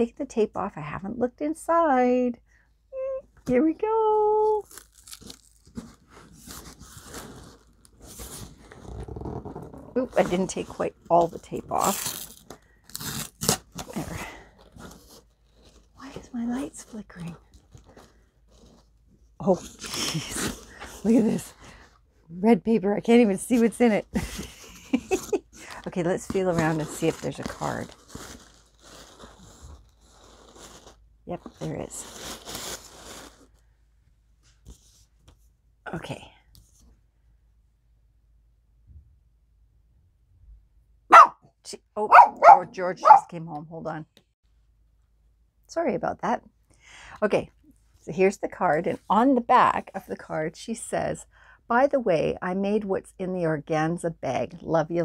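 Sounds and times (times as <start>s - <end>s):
packing tape ripping: 4.6s - 9.8s, 11.7s - 15.9s, 25.0s - 31.0s, 32.0s - 33.5s
cardboard crackling: 4.6s - 21.8s, 24.2s - 33.6s
paper rustling and crinkling: 4.6s - 21.9s, 24.2s - 33.6s
dog barking: 41.1s - 41.5s, 42.1s - 43.3s.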